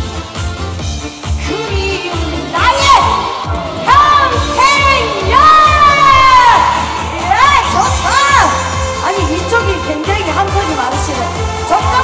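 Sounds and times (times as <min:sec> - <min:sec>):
backing track with steady beat: 0:00.0 - 0:12.0
audience shouting and cheering: 0:01.5 - 0:09.3.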